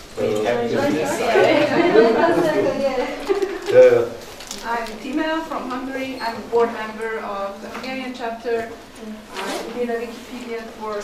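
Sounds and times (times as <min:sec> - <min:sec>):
people talking at once: 0:00.2 - 0:08.6.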